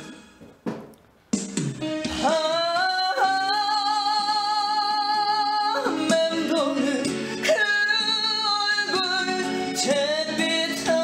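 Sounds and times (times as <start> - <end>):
backing track: 0.0 - 11.0.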